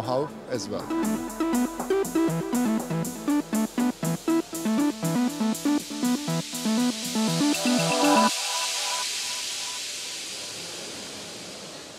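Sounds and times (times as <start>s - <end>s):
electronic background track: 0.0s - 10.4s.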